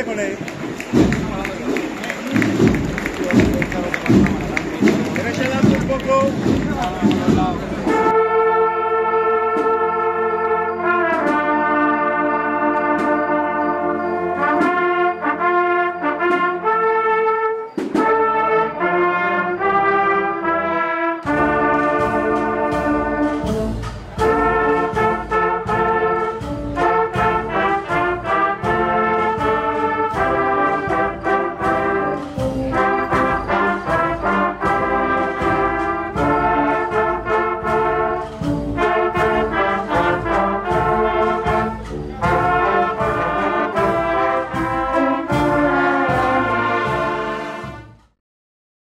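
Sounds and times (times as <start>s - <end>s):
drums beating: 0.0s - 8.5s, 21.2s - 48.1s
trumpets and trombones: 0.0s - 48.2s.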